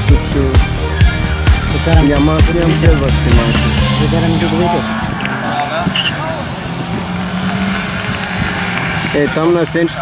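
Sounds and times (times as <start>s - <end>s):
car engine running steadily: 1.3s - 9.9s.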